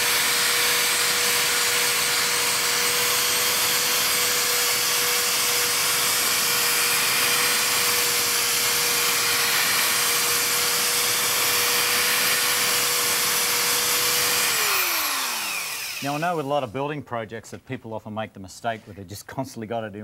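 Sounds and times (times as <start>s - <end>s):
electric drill whining: 0.0s - 16.5s.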